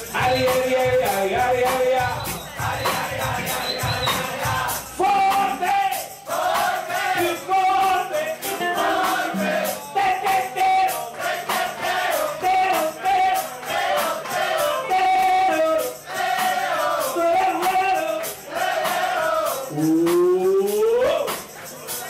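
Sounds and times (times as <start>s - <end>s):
bass: 0.0s - 5.4s, 19.4s - 22.0s
drum and percussion beat: 0.0s - 22.0s
voices singing together: 0.0s - 22.0s
guitar: 7.4s - 11.1s, 19.6s - 22.0s.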